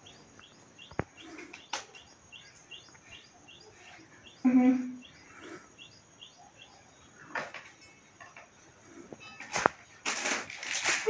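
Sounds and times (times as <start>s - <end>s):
bird chirping: 0.0s - 9.4s.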